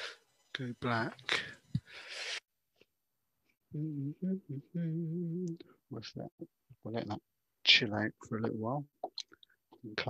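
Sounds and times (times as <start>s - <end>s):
man humming: 3.7s - 6.3s.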